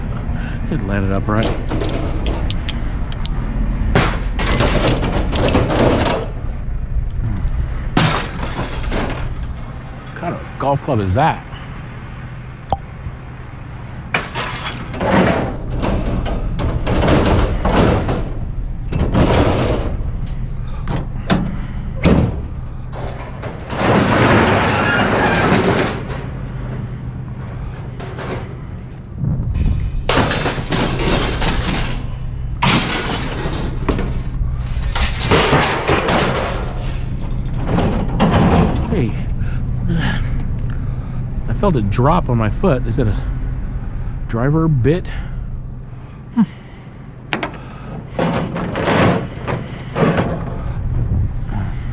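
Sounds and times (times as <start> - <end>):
steady low hum: 0.0 - 51.9
metal wire racks clattering: 1.2 - 2.8, 4.0 - 6.4, 8.0 - 9.7, 14.1 - 28.9, 29.5 - 39.3, 47.3 - 51.9.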